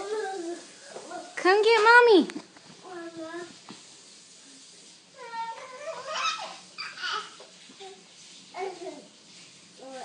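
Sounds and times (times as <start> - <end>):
baby babbling and laughing: 5.2 - 8.0.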